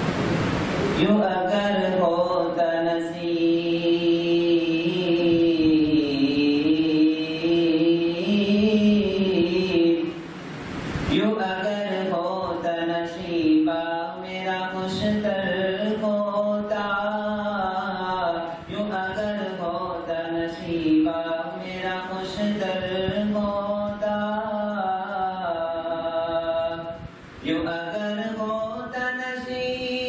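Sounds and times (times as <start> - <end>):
man chanting melodic verses: 0.9 - 10.2, 11.1 - 30.0.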